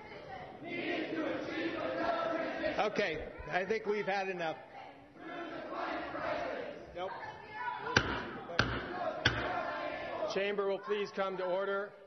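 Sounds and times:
wooden gavel strikes: 8.0 - 9.6.

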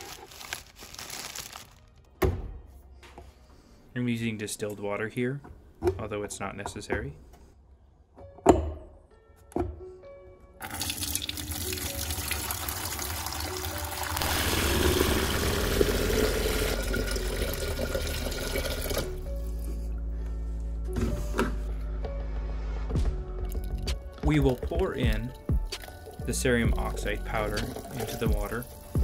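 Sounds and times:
background music: 0.0 - 29.0
water pouring into plastic pitcher: 10.6 - 19.3, 23.5 - 29.0.

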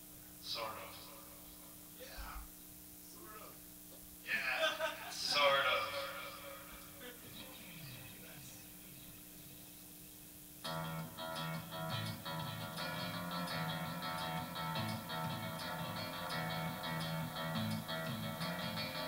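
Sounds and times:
electric guitar strumming: 10.6 - 19.0.

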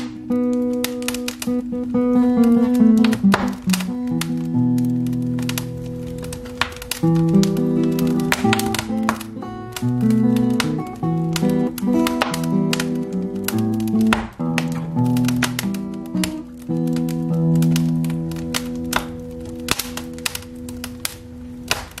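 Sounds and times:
classical guitar waltz: 0.0 - 22.0
wood fire crackling: 0.0 - 22.0.

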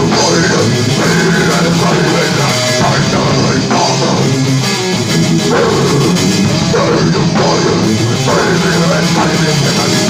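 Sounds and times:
distorted guitars: 0.0 - 10.0.

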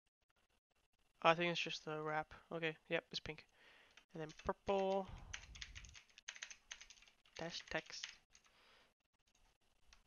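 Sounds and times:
computer keyboard typing: 3.9 - 8.5.

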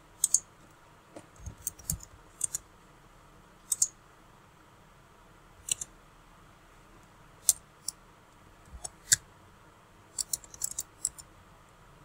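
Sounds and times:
mouse clicks: 3.7 - 4.0.

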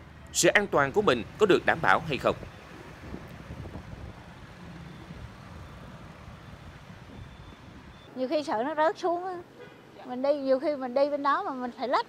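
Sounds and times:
motor vehicles rumbling: 0.0 - 11.8.

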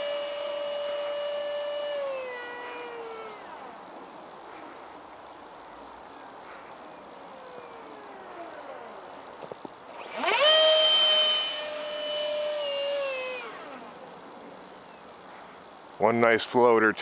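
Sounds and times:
electric ducted fan whining: 0.0 - 16.9.

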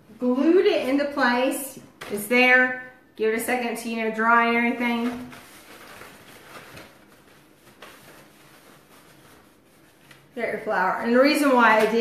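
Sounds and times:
paper rustling: 4.8 - 12.0.

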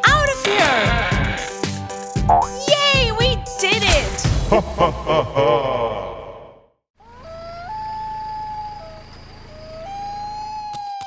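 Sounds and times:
cartoon background music: 0.0 - 5.1
springy comic sound effect: 2.3 - 2.7.

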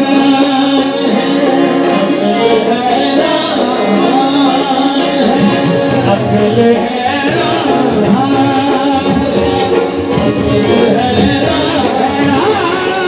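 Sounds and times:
harmonium: 0.0 - 13.0
man singing: 0.0 - 13.0
tabla drums: 0.0 - 13.0.

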